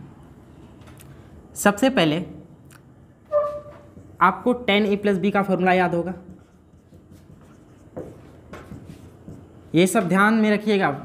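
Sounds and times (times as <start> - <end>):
marker writing on whiteboard: 3.3 - 10.5.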